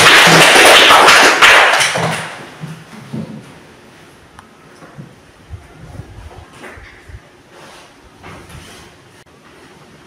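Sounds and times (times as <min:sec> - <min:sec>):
children clapping: 0:00.0 - 0:02.5.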